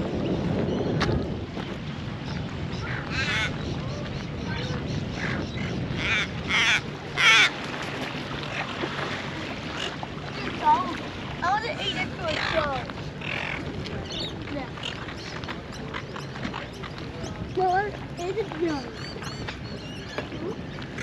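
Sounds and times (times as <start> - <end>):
gulls squawking: 2.2 - 21.0.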